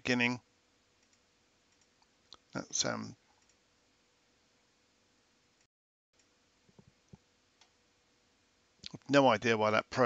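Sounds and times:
thin steady hum: 0.0 - 10.0
faint clicks: 1.0 - 2.5, 3.3 - 3.6.

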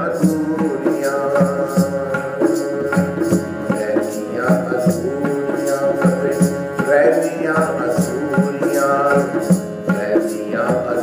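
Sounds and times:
hand drum beat: 0.0 - 11.0
man singing: 0.0 - 11.0.

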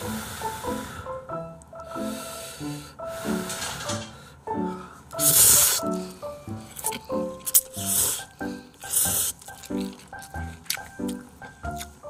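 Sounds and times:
soft background music: 0.0 - 12.0
noodles being slurped: 5.1 - 11.8.

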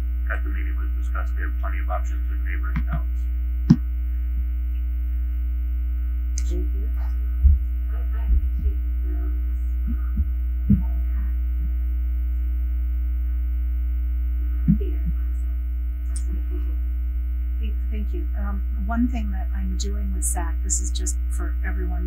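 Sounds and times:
faint steady tones: 0.0 - 22.0
low electrical hum: 0.0 - 22.0.

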